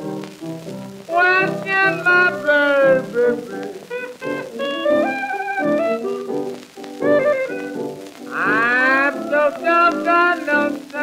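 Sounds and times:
blues piano playing: 0.0s - 11.0s
person singing sliding note: 1.1s - 4.8s, 8.3s - 11.0s.

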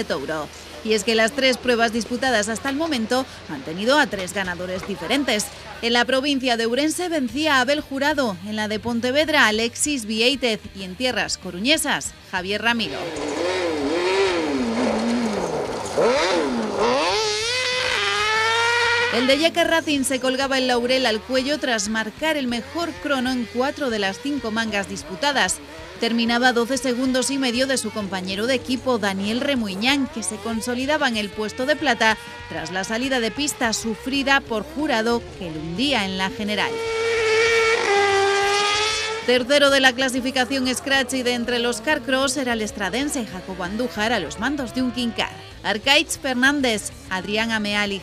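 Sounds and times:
buggy engine revving hard: 0.0s - 6.3s, 12.6s - 48.0s.

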